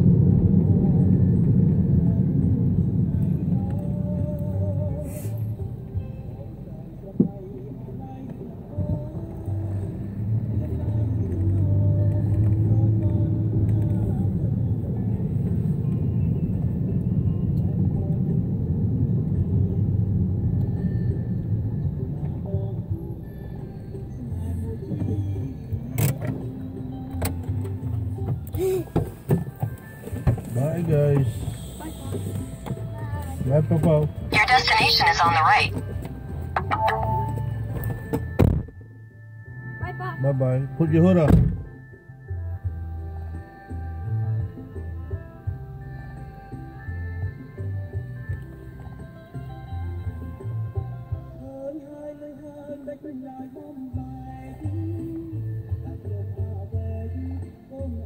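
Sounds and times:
car engine and road noise: 0.0 - 58.0
music playing: 21.3 - 51.6.

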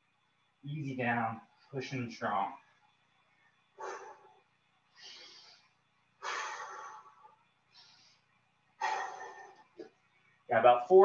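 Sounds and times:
man breathing heavily: 3.7 - 10.0.

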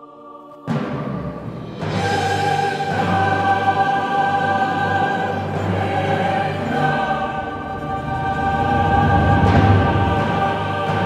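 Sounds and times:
choir and strings holding a chord: 0.0 - 11.0.

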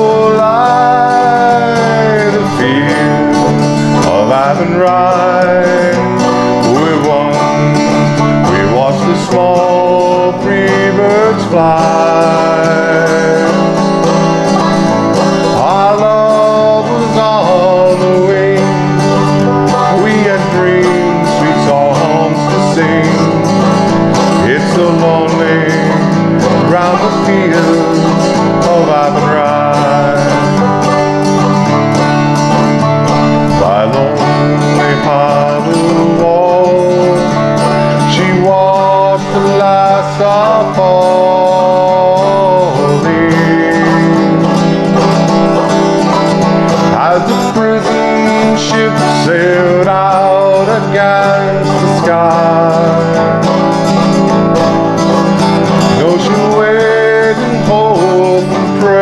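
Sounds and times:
banjo melody: 0.0 - 59.0
strummed acoustic guitar: 0.0 - 59.0.

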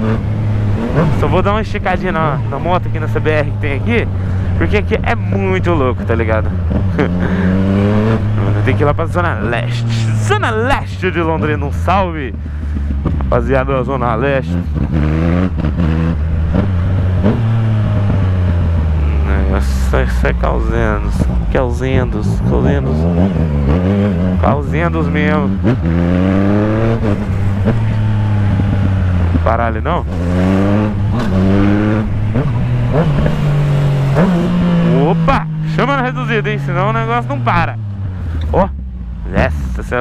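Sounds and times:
motorcycle engine accelerating: 0.0 - 40.0.

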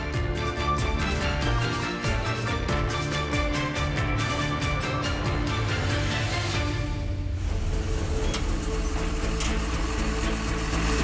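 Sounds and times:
news theme music with beat: 0.0 - 11.0
deep low rumble: 6.8 - 11.0.

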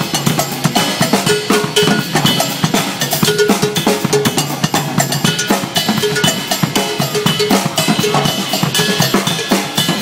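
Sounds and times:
drum kits and congas playing: 0.0 - 10.0.

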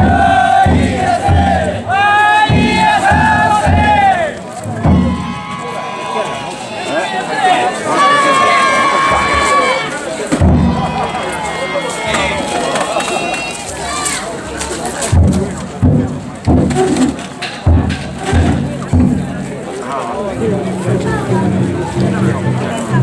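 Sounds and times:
group of people shouting: 0.0 - 10.0, 10.6 - 14.2
voices holding a high note: 1.8 - 14.4.

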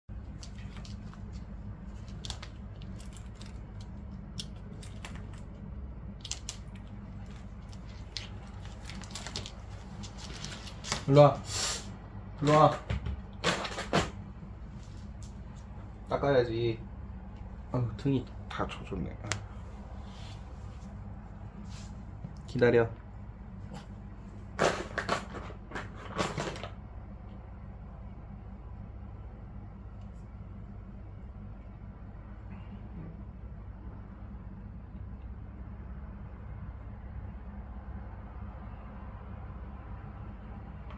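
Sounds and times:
steady low hum: 0.1 - 40.9
fabric straps rustling: 6.2 - 11.2.

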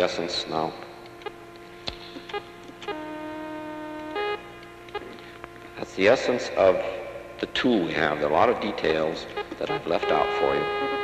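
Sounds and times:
buzzing electronic tone: 0.0 - 11.0
steady electrical hum: 0.0 - 11.0
short electronic blips: 0.9 - 5.8, 8.9 - 11.0.

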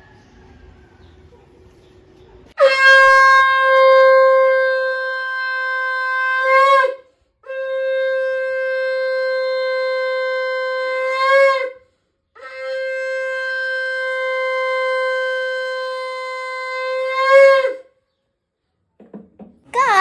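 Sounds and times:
conch shell blasts: 2.6 - 11.8, 12.4 - 17.9
breath: 7.0 - 7.4, 11.8 - 12.3.

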